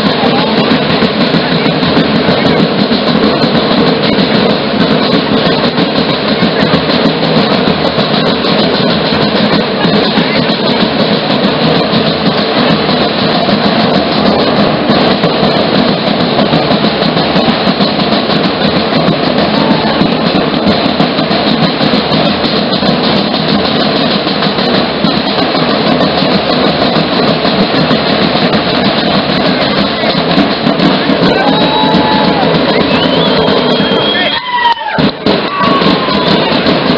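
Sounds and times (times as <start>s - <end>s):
group of drums beating: 0.0s - 36.9s.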